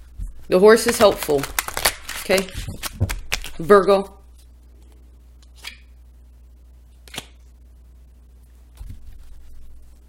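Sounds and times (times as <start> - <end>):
steady low hum: 0.0 - 10.0
soft card rustle: 0.5 - 5.8.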